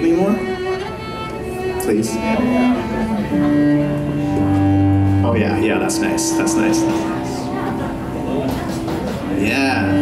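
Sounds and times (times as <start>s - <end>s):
cello bowed long notes: 0.0s - 10.0s.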